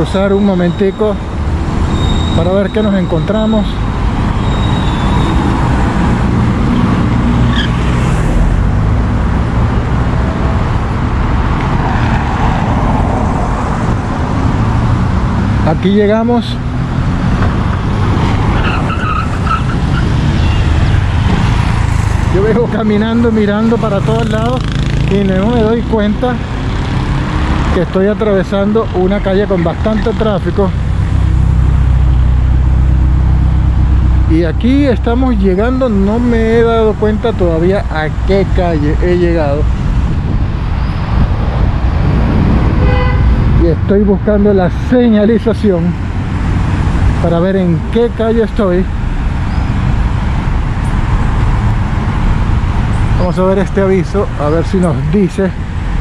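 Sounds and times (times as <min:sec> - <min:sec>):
cars driving past: 0:00.0 - 0:56.0
road traffic rumble: 0:00.0 - 0:56.0.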